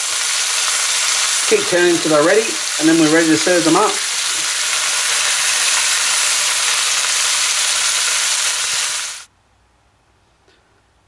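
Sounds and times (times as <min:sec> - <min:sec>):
chicken sizzling in a frying pan: 0:00.0 - 0:09.3.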